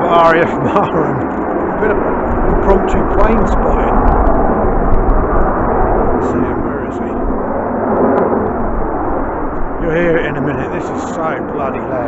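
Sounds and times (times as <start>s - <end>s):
jet engine roar: 0.0s - 12.0s.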